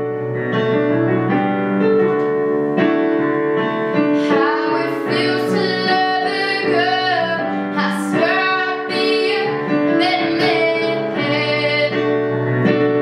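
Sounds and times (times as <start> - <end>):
piano backing: 0.0 - 13.0
girl singing pop ballad: 4.0 - 12.8.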